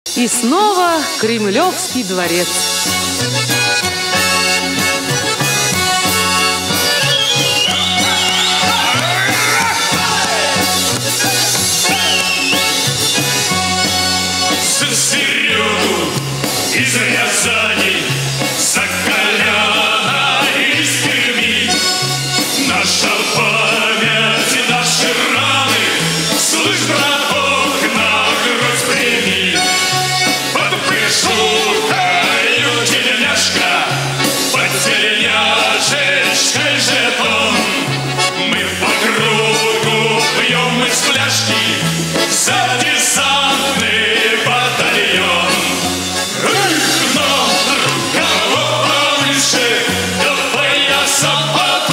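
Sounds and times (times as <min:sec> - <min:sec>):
button accordion playing folk song: 0:00.1 - 0:51.9
bass line: 0:00.2 - 0:51.9
man singing: 0:14.5 - 0:51.9.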